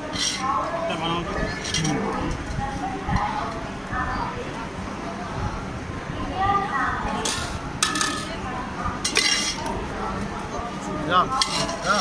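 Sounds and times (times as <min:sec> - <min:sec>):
spoon clinking on metal pots: 0:11.3 - 0:12.0.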